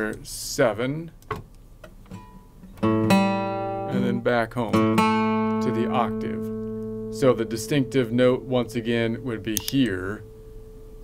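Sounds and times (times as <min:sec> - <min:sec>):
plucked guitar note: 0:02.8 - 0:11.0.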